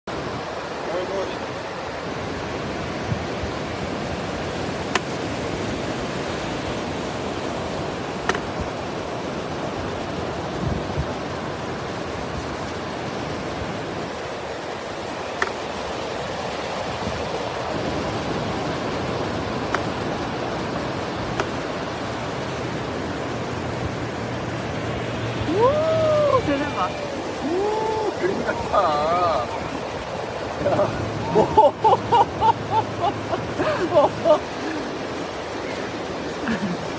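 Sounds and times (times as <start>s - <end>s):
ocean surf breaking: 0.1s - 36.9s.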